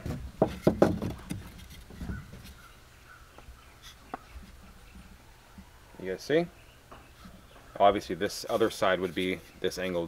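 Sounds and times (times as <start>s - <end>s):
wooden boards knocking: 0.0s - 2.4s.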